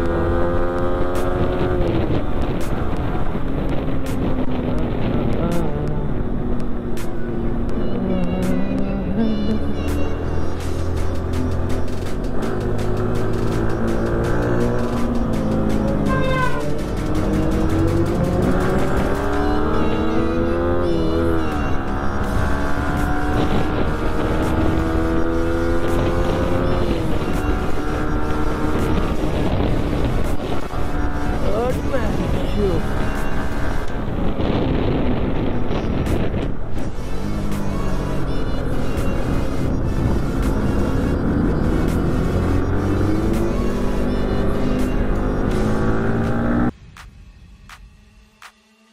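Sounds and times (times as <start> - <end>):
motorcycle engine accelerating: 0.0 - 46.8
wind and road noise: 0.0 - 48.9.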